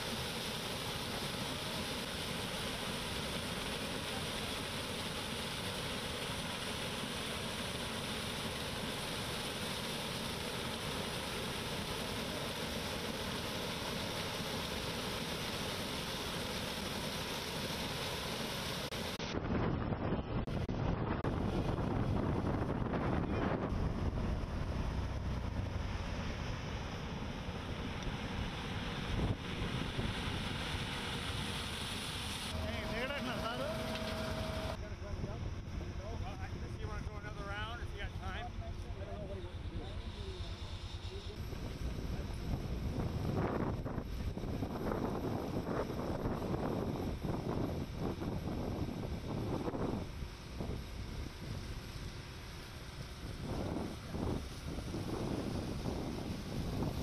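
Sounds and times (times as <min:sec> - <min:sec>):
combine harvester running: 0:00.0 - 0:57.0
wind on microphone: 0:19.1 - 0:25.9, 0:27.6 - 0:30.6, 0:41.2 - 0:52.2, 0:52.8 - 0:57.0.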